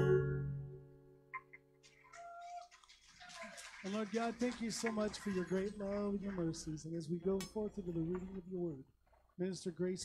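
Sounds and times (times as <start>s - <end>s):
guitar notes: 0.0s - 1.8s.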